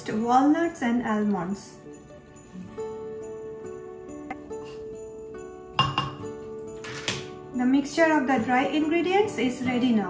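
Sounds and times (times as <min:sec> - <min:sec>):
soft background music: 0:00.0 - 0:10.0
spatula clinking glass bowl: 0:05.8 - 0:07.2.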